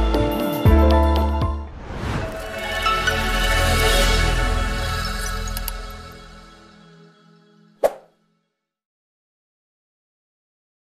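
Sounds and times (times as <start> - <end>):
background music: 0.0 - 8.6.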